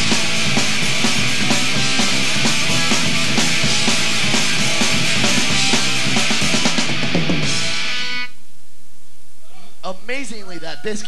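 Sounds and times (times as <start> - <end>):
live rock band playing: 0.0 - 8.3.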